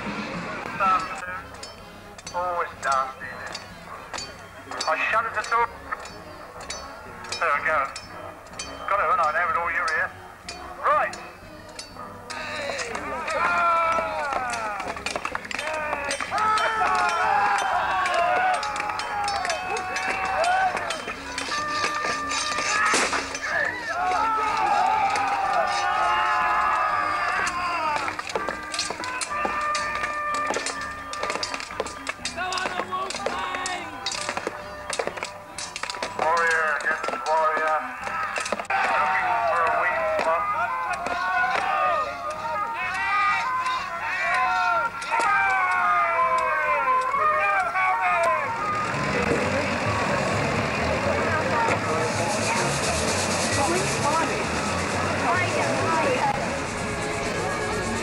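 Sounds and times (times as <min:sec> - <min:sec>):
crowd chatter: 0:00.0 - 0:58.0
fairground music: 0:00.0 - 0:58.0
men shouting: 0:12.3 - 0:53.1
weapons clashing on shields: 0:27.2 - 0:41.8.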